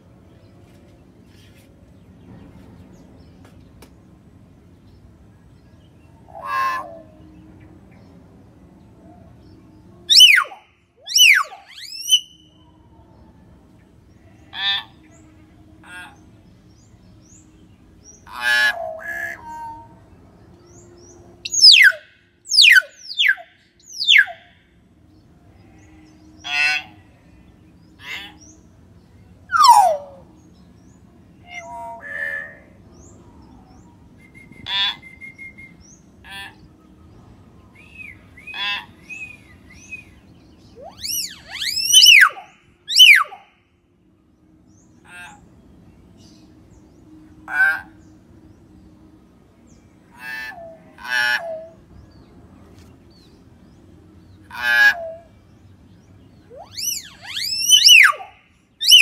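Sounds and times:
myna bird calling: 6.1 - 7.3, 10.1 - 12.8, 17.2 - 20.0, 20.8 - 24.6, 25.6 - 27.2, 27.8 - 28.8, 29.4 - 37.0, 37.7 - 43.6, 50.0 - 52.2, 54.2 - 59.0.

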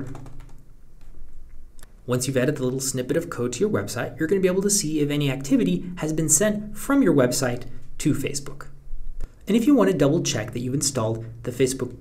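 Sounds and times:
computer keyboard and mouse clicks: 0.0 - 1.1
low steady hum: 0.0 - 12.0.

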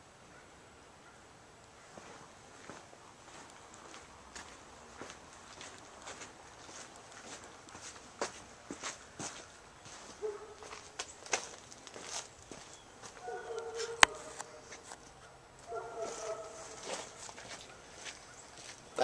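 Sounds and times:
footsteps on concrete: 2.0 - 15.0, 15.6 - 19.0.

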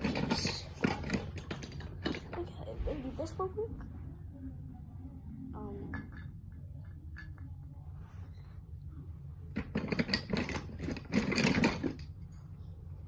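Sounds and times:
toy train track pieces clattering: 0.0 - 2.5, 9.6 - 12.1.

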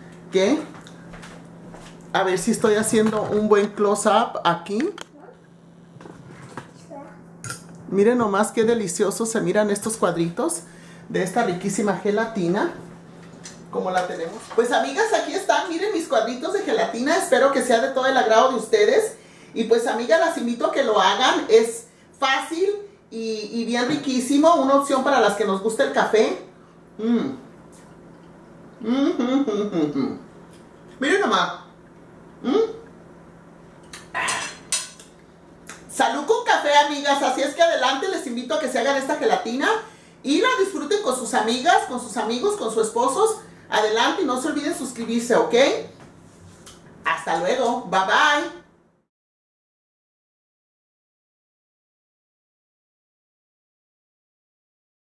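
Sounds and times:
person humming mm: 27.0 - 27.4, 28.8 - 30.3, 32.4 - 32.9, 34.1 - 34.5
fork scraping ceramic plate: 34.0 - 35.1
dishware clinking: 34.2 - 35.0.

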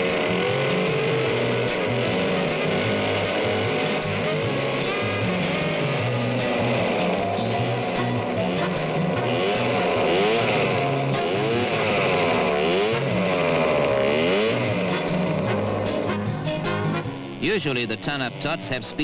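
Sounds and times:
small engines buzzing past: 0.0 - 17.4
background music: 0.0 - 19.0.

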